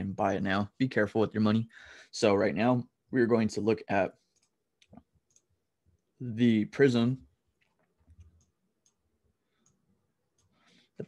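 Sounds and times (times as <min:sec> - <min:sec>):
soft breath: 0:09.4 - 0:11.0.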